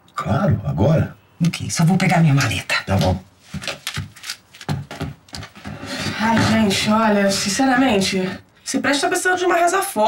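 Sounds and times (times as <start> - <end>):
footsteps on hard floor: 3.0 - 7.0.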